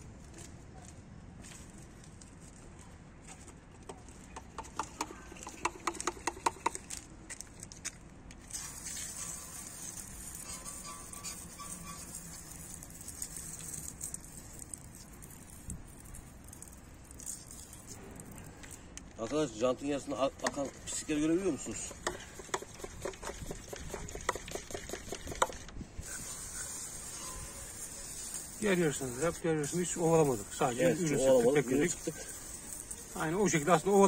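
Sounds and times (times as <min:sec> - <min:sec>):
water spattering onto wheel: 0:08.5 - 0:19.1, 0:26.0 - 0:34.0.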